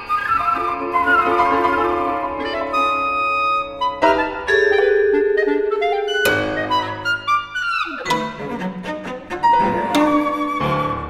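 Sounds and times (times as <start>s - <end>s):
chamber music ensemble: 0.0s - 11.0s.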